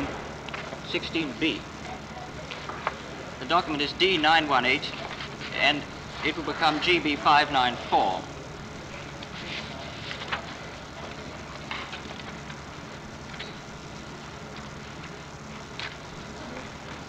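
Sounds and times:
recording hiss and hum: 0.0 - 17.0
faint clicks and rustles: 8.6 - 17.0.

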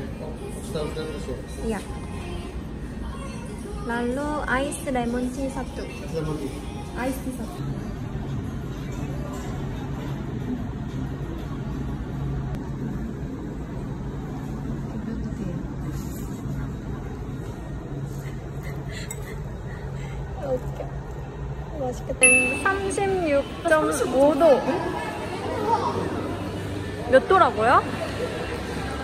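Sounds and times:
murmur of voices: 0.0 - 29.0
steady low hum: 0.0 - 29.0.

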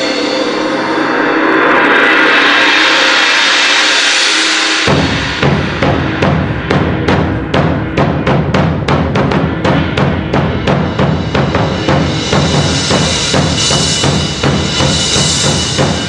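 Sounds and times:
ringing percussion tones: 0.0 - 2.6
drum strikes: 0.0 - 4.0, 4.7 - 16.0.

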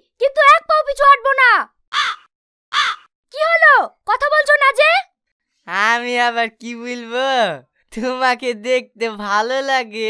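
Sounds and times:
crow cawing: 1.9 - 3.1.

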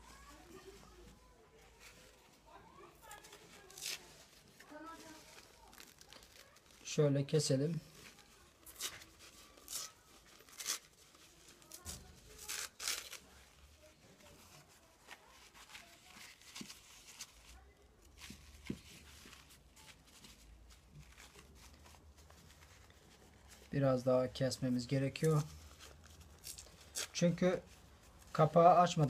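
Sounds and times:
paper rustling: 0.0 - 7.0, 7.7 - 23.8, 24.7 - 29.0
paper napkin tearing: 2.9 - 6.9, 8.0 - 23.6.

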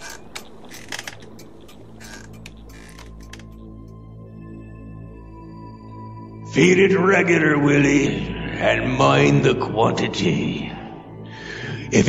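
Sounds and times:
soft clicks and crackles: 0.0 - 4.0
low sustained music tones: 0.0 - 12.0.

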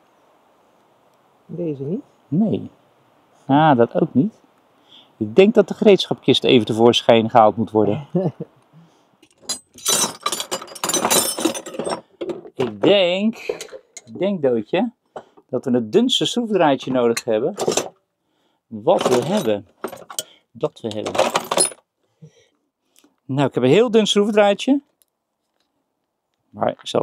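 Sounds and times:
metal hand tools clinking: 9.3 - 12.4, 17.0 - 17.9, 19.0 - 20.3, 20.9 - 21.8
person speaking: 12.6 - 17.7, 18.7 - 19.7.

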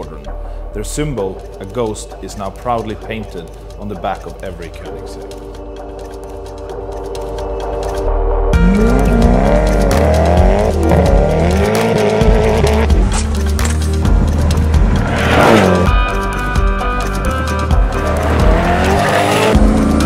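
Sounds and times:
background music with sustained chords: 0.0 - 20.0
car engine revving: 8.6 - 16.4, 17.3 - 20.0.

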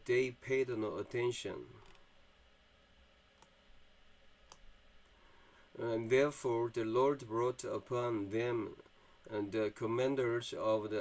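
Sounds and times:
computer mouse clicks: 1.8 - 2.0, 3.4 - 3.6.

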